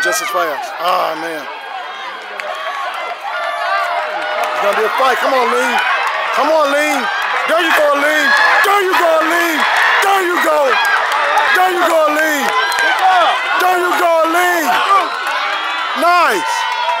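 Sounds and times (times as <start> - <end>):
spectators yelling and cheering: 0.0 - 17.0
whooping yell: 3.3 - 17.0.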